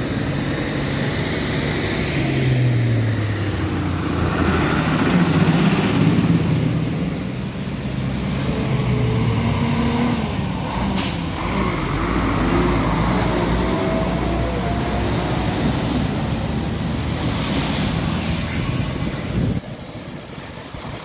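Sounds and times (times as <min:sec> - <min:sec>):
water washing noise: 0:00.0 - 0:21.0.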